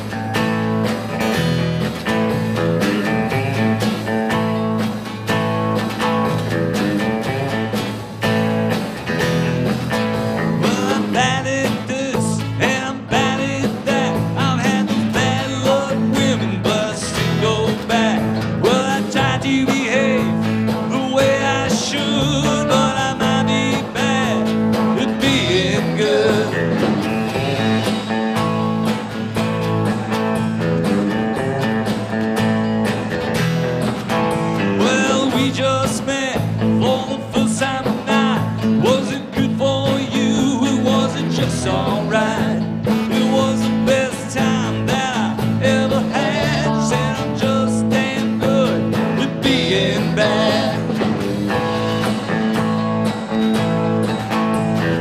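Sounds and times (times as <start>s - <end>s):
live country-rock band playing: 0.0s - 55.0s
man singing lead vocal: 10.4s - 28.3s, 34.6s - 51.7s.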